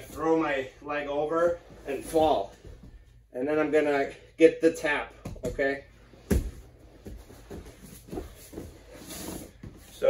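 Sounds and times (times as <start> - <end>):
shuffling on foam mats: 0.0 - 3.2, 6.0 - 10.0.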